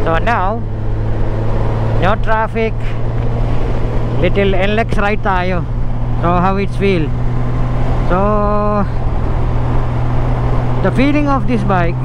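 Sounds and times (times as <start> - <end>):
motorcycle engine humming: 0.0 - 12.0
wind and road rush: 0.0 - 12.0
person speaking: 2.0 - 3.0, 4.2 - 7.1, 8.1 - 9.0, 10.8 - 12.0.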